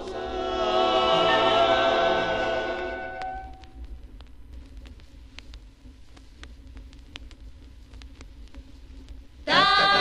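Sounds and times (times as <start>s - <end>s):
vocal group with orchestra chord: 0.0s - 3.2s, 9.5s - 10.0s
record surface noise with clicks: 2.7s - 10.0s.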